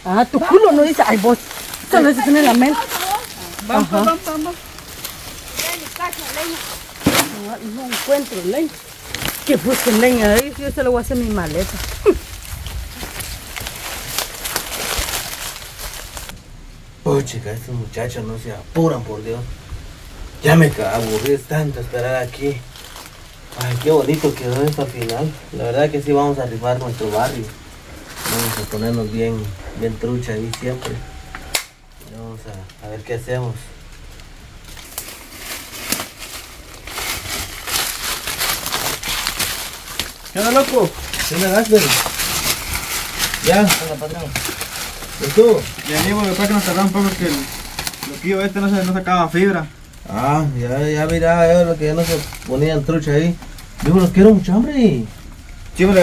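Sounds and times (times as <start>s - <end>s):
twigs crackling: 0.0s - 16.9s, 18.3s - 56.0s
footsteps crunching through dry leaves: 0.1s - 16.4s, 20.4s - 31.3s, 33.9s - 56.0s.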